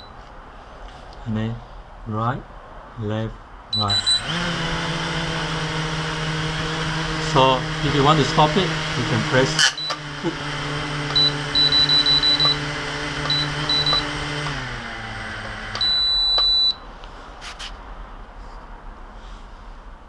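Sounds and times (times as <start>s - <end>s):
long beep: 3.7s - 4.3s, 11.1s - 12.7s, 13.3s - 14.2s, 15.8s - 16.9s
short high beeps: 3.8s - 4.3s, 11.1s - 12.6s, 13.3s - 14.1s, 15.8s - 16.8s
drone motors humming: 3.8s - 16.4s.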